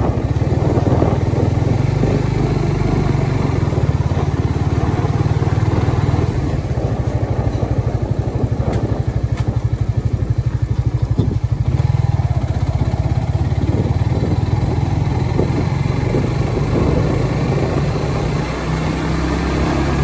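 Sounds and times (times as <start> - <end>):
motorcycle engine throbbing: 0.0 - 20.0.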